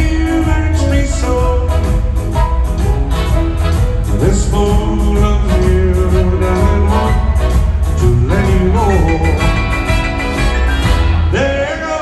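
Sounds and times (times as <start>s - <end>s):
sliding lead guitar melody: 0.0s - 11.6s
country band playing: 0.0s - 12.0s.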